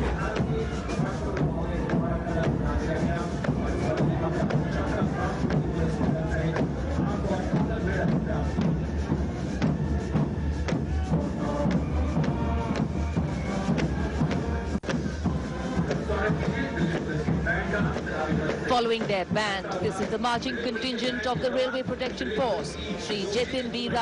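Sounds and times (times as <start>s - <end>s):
brass band playing a march: 0.0s - 24.0s
steady drum beat: 0.0s - 24.0s.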